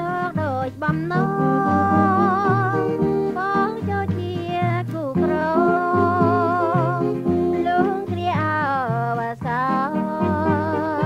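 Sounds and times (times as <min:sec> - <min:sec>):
guitar and bass accompaniment: 0:00.0 - 0:11.0
woman singing with vibrato: 0:00.0 - 0:11.0.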